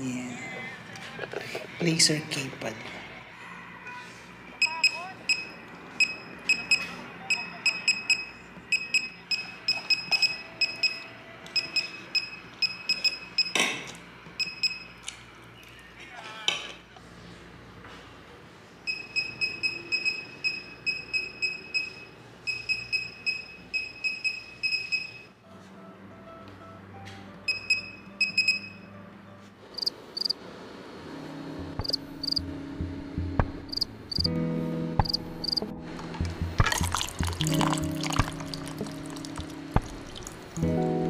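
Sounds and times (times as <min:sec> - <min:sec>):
background music: 0:31.0 - 0:41.0
liquid pouring: 0:36.6 - 0:40.7.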